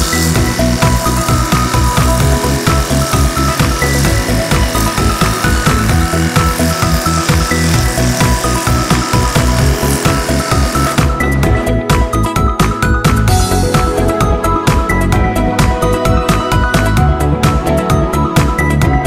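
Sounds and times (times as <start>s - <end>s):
pressure washer spraying: 0.0s - 11.7s
background music with beat: 0.0s - 19.0s.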